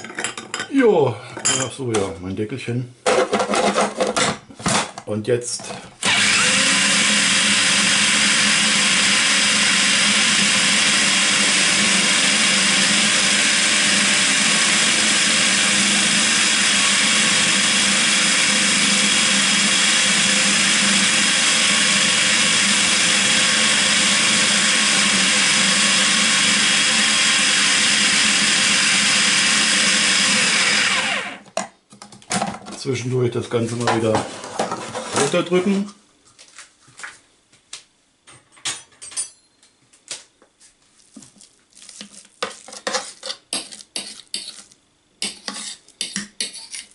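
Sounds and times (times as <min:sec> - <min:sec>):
food processor motor running: 0:06.0 - 0:31.4.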